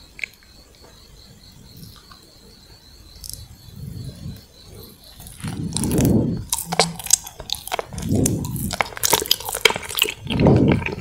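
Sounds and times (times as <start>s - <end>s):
muffled chewing: 0.0s - 11.0s
wet mouth sounds eating gummy candy: 5.2s - 11.0s.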